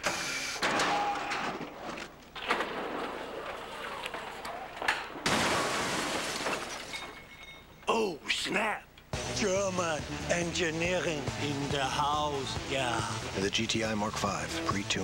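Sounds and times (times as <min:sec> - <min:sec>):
glass smashing crashes: 0:02.4 - 0:07.9.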